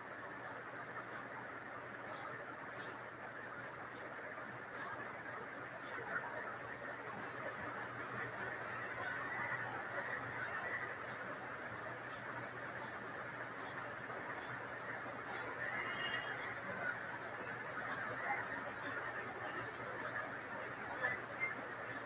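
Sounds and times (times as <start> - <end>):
background hiss: 0.0 - 22.0.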